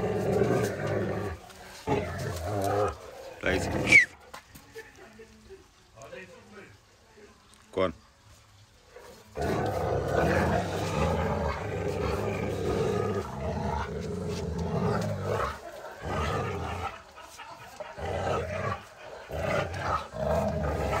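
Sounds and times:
dog growling deeply: 0:00.0 - 0:04.2, 0:09.0 - 0:17.1, 0:17.8 - 0:21.0.

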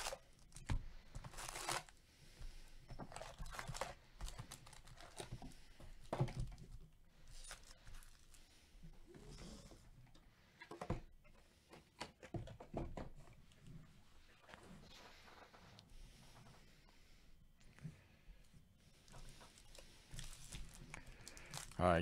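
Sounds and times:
foil packs crinkling: 0:00.0 - 0:02.0, 0:03.1 - 0:05.4, 0:07.3 - 0:08.4, 0:19.3 - 0:22.0.

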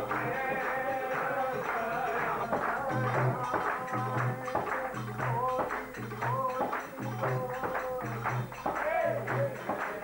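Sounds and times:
group singing devotional song: 0:00.0 - 0:10.0
hand clapping: 0:00.0 - 0:10.0
rhythmic accompaniment: 0:00.0 - 0:10.0.

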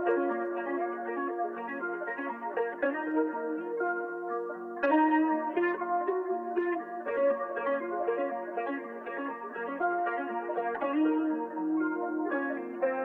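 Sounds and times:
plucked guitar melody: 0:00.0 - 0:13.0.

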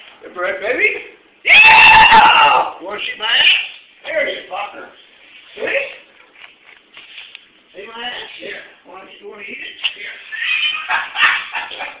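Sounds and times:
person squealing: 0:10.2 - 0:10.9.

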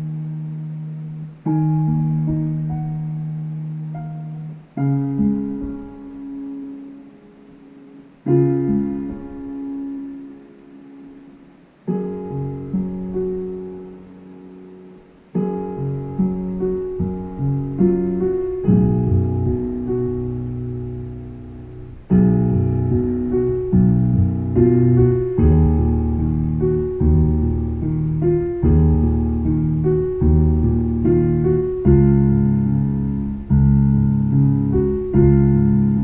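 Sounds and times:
digital piano chords: 0:00.0 - 0:36.0.

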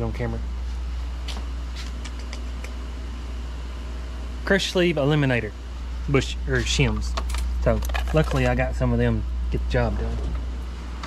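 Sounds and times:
ventilation fans humming: 0:00.0 - 0:11.0.

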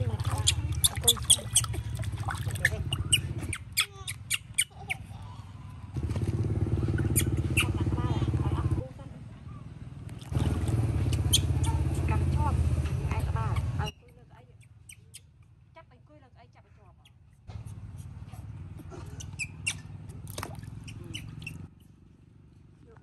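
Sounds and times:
low motor hum: 0:00.0 - 0:03.8, 0:04.4 - 0:13.9
baby monkey squeaking: 0:00.2 - 0:05.1, 0:06.9 - 0:08.4, 0:11.0 - 0:12.2, 0:13.1 - 0:15.5, 0:19.0 - 0:20.0, 0:20.8 - 0:21.8.

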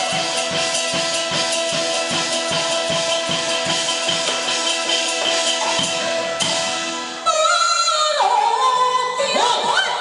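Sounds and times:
instrumental band accompaniment: 0:00.0 - 0:10.0
opera singing with vibrato: 0:07.2 - 0:10.0.

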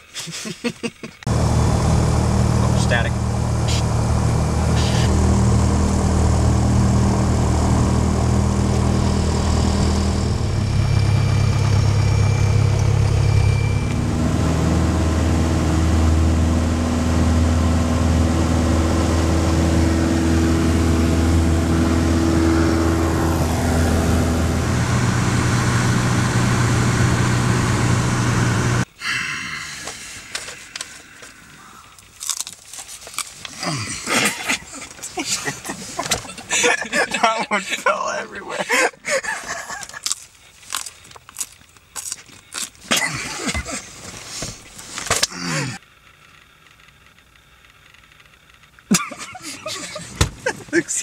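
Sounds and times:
propeller plane engine running: 0:01.3 - 0:28.9, 0:46.4 - 0:51.0.

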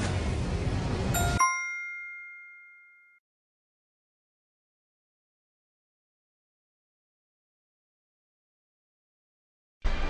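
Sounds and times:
bright chime ding: 0:01.2 - 0:03.2.

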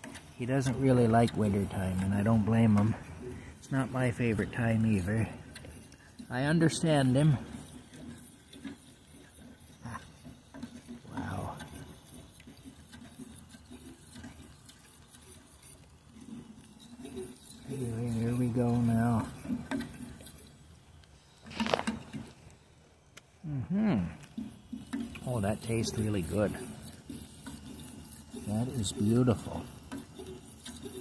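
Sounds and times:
fork scraping a saucepan: 0:00.0 - 0:22.3, 0:24.2 - 0:31.0.

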